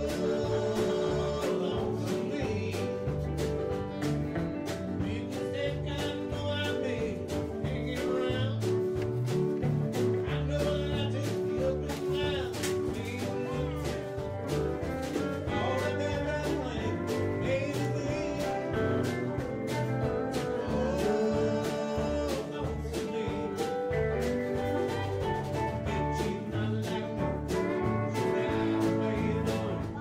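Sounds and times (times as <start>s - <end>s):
drums keeping a beat: 0.0s - 30.0s
keyboard playing: 0.0s - 30.0s
man singing: 0.0s - 30.0s.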